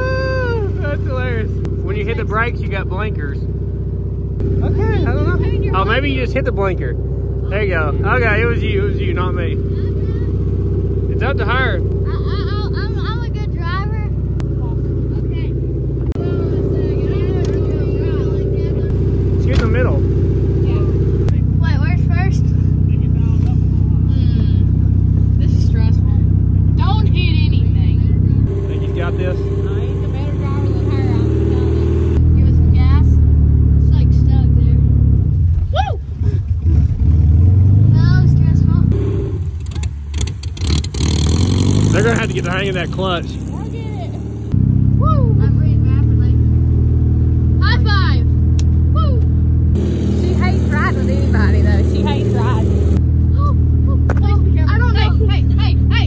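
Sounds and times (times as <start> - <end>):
car engine revving while driving: 0.0 - 35.6, 36.5 - 56.0.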